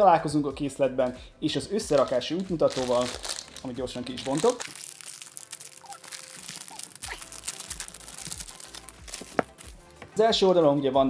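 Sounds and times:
plastic wrapping crinkling and tearing: 1.8 - 10.1.

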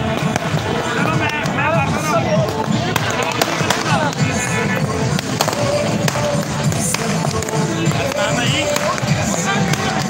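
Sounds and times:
firecracker pops: 0.0 - 1.6, 2.4 - 4.3, 5.0 - 10.0
crowd noise: 0.0 - 10.0
music playing: 0.0 - 10.0.

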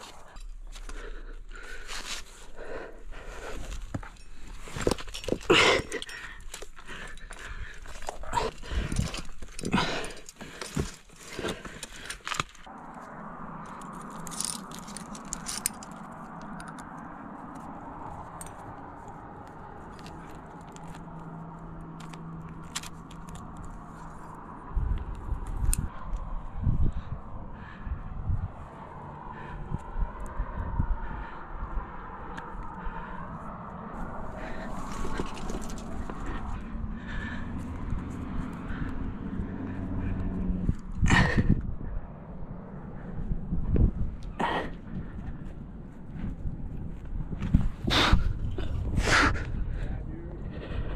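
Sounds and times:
metal climbing gear clinking: 0.0 - 12.7, 13.6 - 26.3, 34.3 - 41.6
steady background hum: 0.0 - 50.9.

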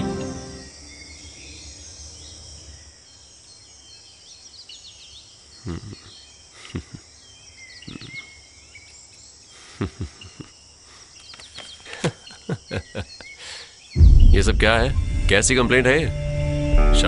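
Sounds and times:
birds chirping: 0.0 - 17.0
insects droning: 0.0 - 17.0.

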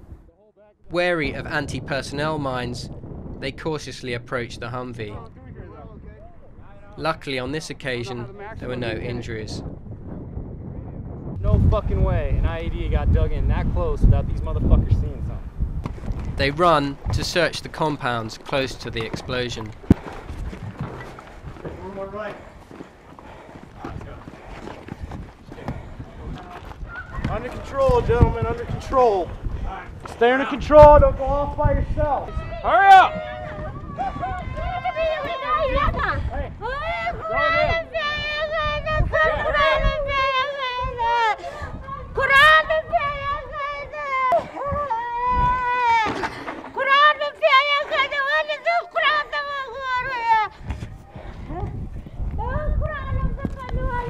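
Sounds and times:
low microphone rumble: 0.0 - 17.7
boots running on hard ground: 18.4 - 30.2
equipment knocking and rattling: 18.8 - 28.4
women crying out and pleading: 32.2 - 50.6.

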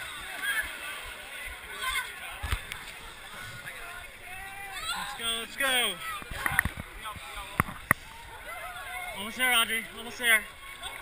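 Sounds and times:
crowd voices and shouting: 0.0 - 11.0.

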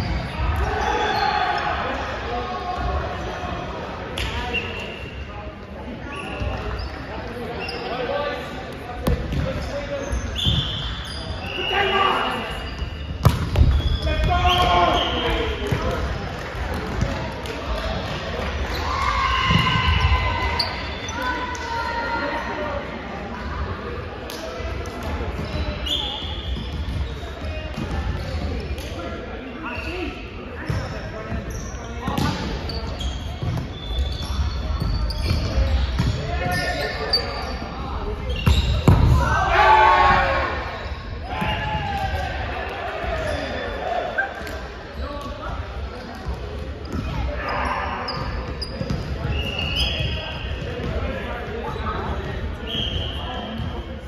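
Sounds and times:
players shouting calls: 0.3 - 5.0, 9.5 - 13.0, 13.8 - 15.9, 35.2 - 44.4
ball bouncing on floor: 13.2 - 13.9.

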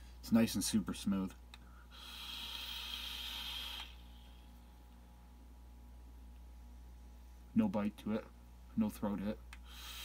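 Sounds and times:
faint low hum: 0.0 - 10.0
vape hissing: 1.9 - 4.4, 9.7 - 10.0.

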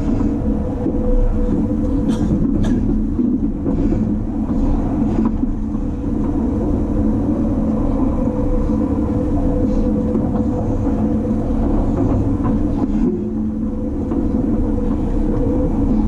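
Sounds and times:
constant hum: 0.0 - 16.0
train wheels rumbling on rail: 0.0 - 16.0.

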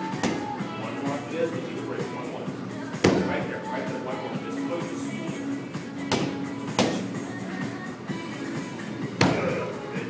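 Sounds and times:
background music: 0.0 - 10.0
boxing gloves punching strike shield: 3.0 - 3.4, 6.1 - 7.0.

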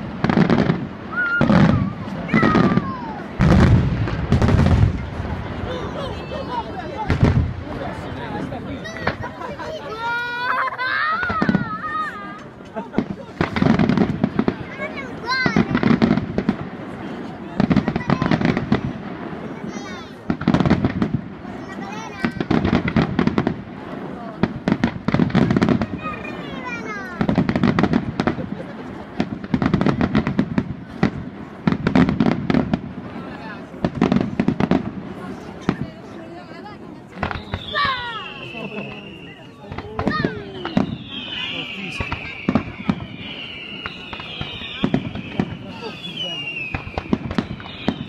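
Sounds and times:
firework whistles: 0.0 - 5.0, 37.2 - 48.0
firework shells booming: 0.0 - 9.6, 11.1 - 36.1, 37.1 - 48.0
firework crackling: 0.0 - 48.0.

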